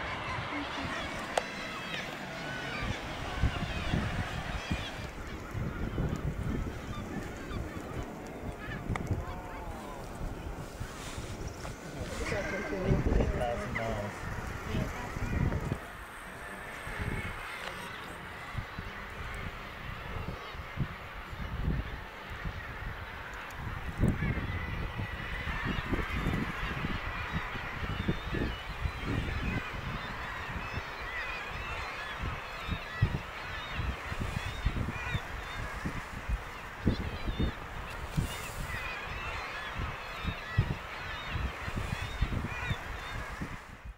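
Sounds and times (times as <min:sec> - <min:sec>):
seabirds honking: 0:00.0 - 0:43.8
wind rumble on microphone: 0:00.0 - 0:43.9.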